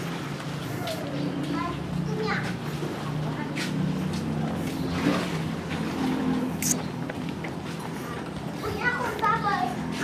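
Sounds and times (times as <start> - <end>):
engine running steadily: 0.0 - 10.0.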